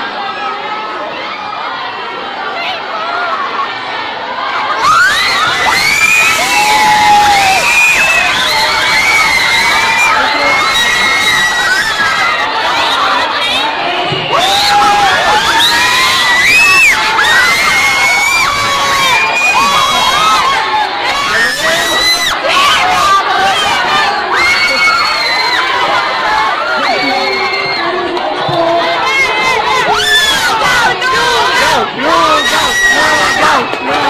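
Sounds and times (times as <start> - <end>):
crowd of teenagers shouting: 0.0 - 34.0.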